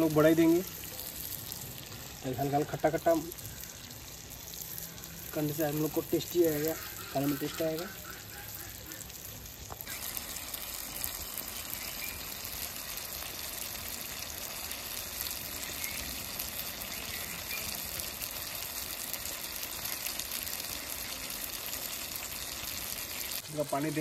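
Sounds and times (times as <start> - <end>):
food sizzling in oil: 0.0 - 24.0.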